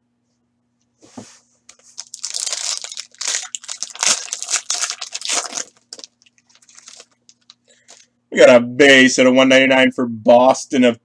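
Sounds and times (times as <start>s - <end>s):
faint steady hum: 0.0s - 11.0s
plastic packaging crinkling: 1.7s - 8.1s.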